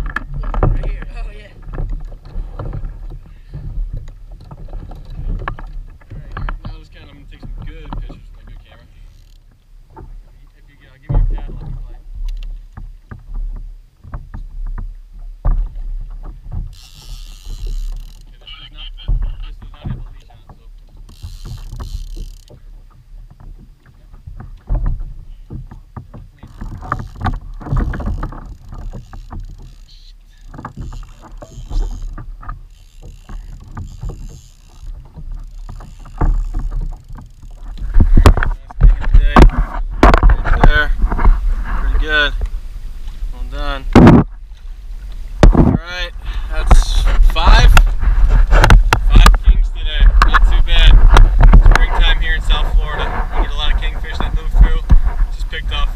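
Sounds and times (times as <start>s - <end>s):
gear knocking against hull: 0.0s - 44.7s, 45.3s - 55.9s
water slapping against kayak hull: 0.0s - 55.9s
wind rumble on microphone: 0.0s - 55.9s.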